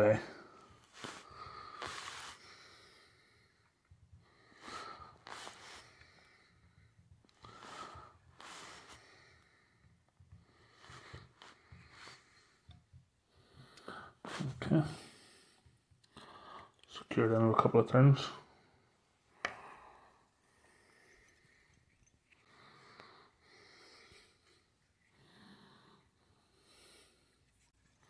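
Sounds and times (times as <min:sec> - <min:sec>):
person breathing through nose: 0:00.9 - 0:03.6, 0:04.2 - 0:06.7, 0:07.4 - 0:12.7, 0:22.4 - 0:27.4.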